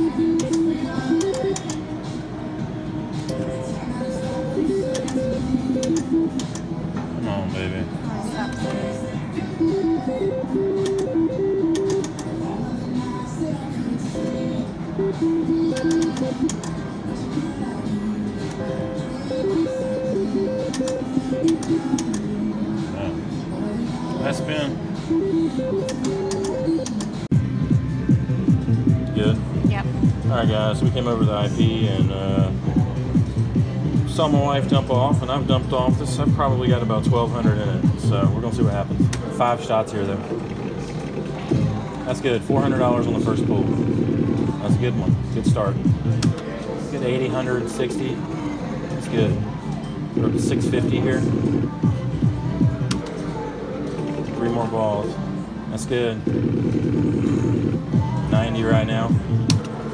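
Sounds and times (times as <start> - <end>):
slot machine electronic notes: 0.0 - 1.8, 3.3 - 7.4, 8.5 - 12.3, 14.2 - 16.8, 18.6 - 22.1, 24.2 - 27.0, 37.4 - 45.2, 49.1 - 51.9, 56.1 - 59.2
casino music: 0.0 - 59.9.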